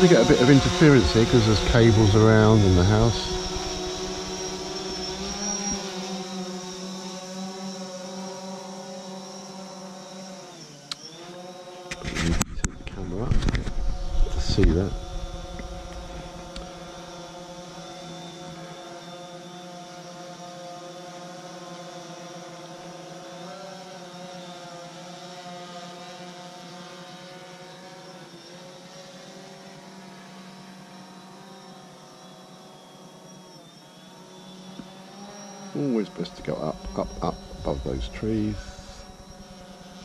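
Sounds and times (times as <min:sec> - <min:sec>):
drone propellers buzzing: 0:00.0 - 0:19.2, 0:30.5 - 0:40.0.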